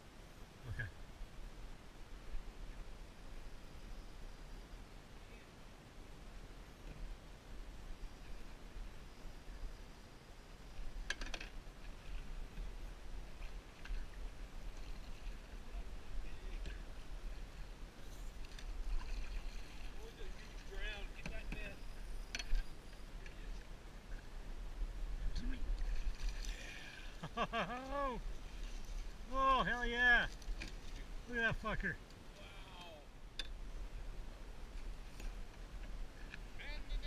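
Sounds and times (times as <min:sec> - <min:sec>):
water lapping against boat hull: 0:16.5 - 0:24.3, 0:25.4 - 0:29.4.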